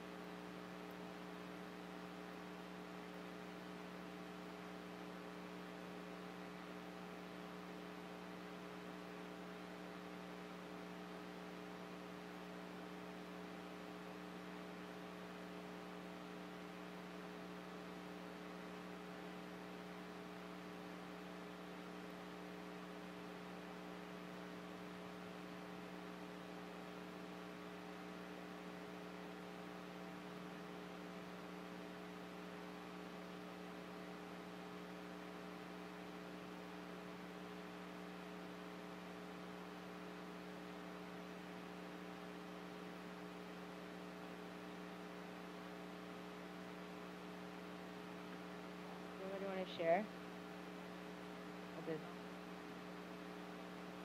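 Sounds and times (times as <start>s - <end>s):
electrical mains hum: 0.0s - 54.0s.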